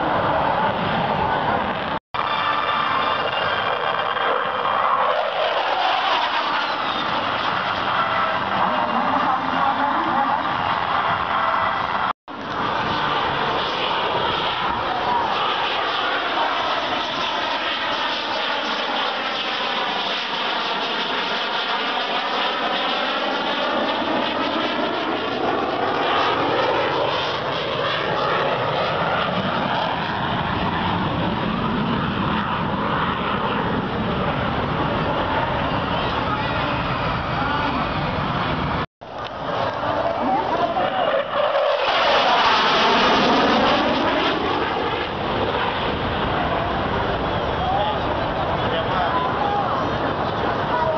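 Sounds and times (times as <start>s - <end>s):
fighter jet flying past: 0.0s - 50.9s.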